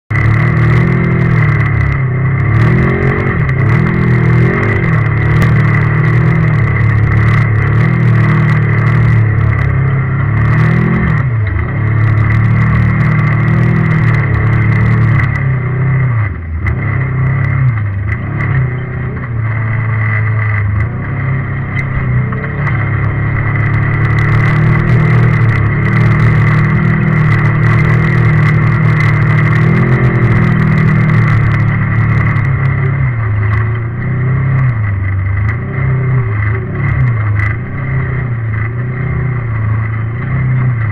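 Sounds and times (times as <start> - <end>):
off-road vehicle engine: 0.0 - 40.9
steady high whine: 0.1 - 40.9.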